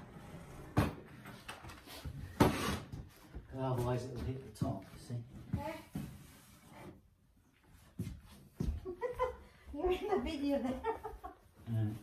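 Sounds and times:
faint room noise: 0:00.0 - 0:12.0.

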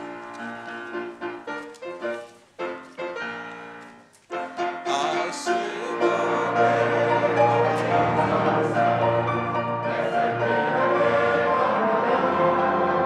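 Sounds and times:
grand piano playing: 0:00.0 - 0:13.0
violin: 0:00.0 - 0:13.0
voices singing a hymn: 0:04.8 - 0:13.0.

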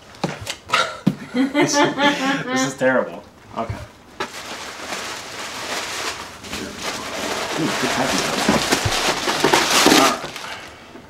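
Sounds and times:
packing paper rustling: 0:04.2 - 0:10.9.

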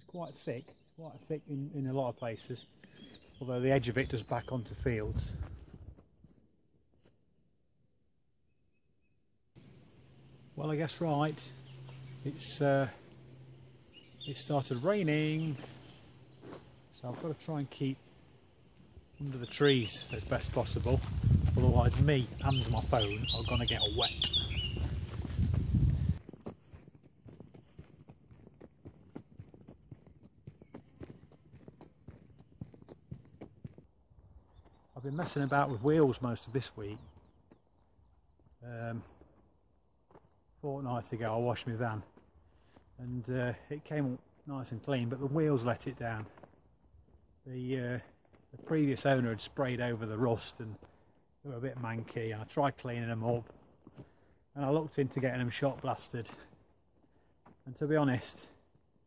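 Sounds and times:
footsteps on dirt path: 0:02.6 - 0:07.2, 0:11.6 - 0:12.2, 0:15.4 - 0:35.8, 0:37.0 - 0:40.6, 0:42.0 - 0:43.0, 0:46.2 - 0:47.4, 0:48.0 - 0:49.6, 0:50.7 - 0:51.3, 0:53.4 - 0:54.4, 0:55.1 - 0:59.0
low wind rumble on microphone: 0:04.8 - 0:06.0, 0:20.1 - 0:26.3
steady high-pitched hiss: 0:09.6 - 0:26.8.

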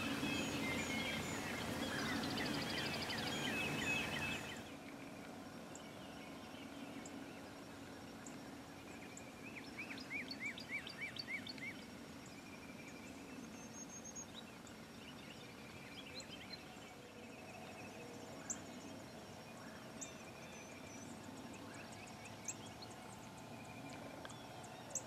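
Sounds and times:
songbird chirps: 0:00.0 - 0:25.0.

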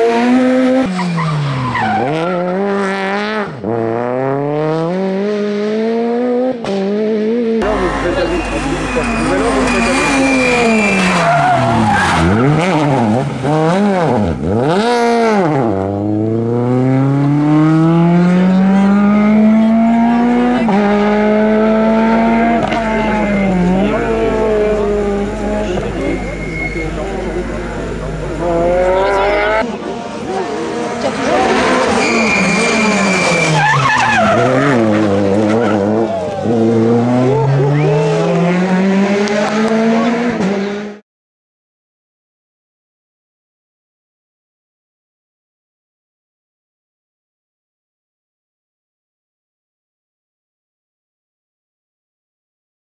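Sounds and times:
rally car engine revving: 0:00.0 - 0:41.0.

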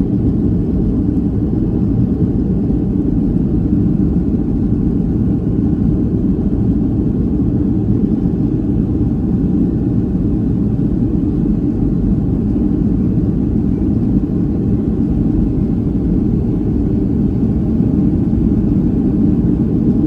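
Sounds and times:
aircraft cabin engine rumble: 0:00.0 - 0:20.0.

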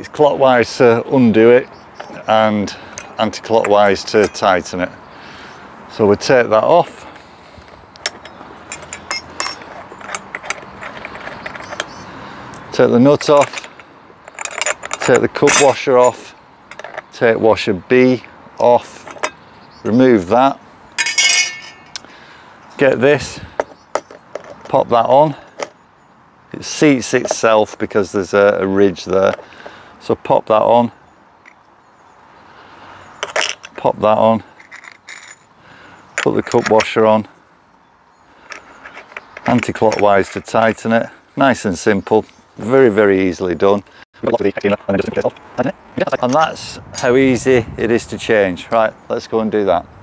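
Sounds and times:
metal brush head clinking: 0:02.0 - 0:04.6, 0:08.0 - 0:12.0, 0:13.2 - 0:17.0, 0:21.0 - 0:22.0, 0:46.0 - 0:47.2.

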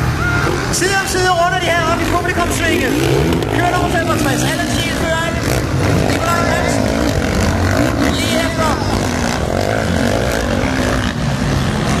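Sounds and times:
motocross bikes revving: 0:00.0 - 0:12.0.

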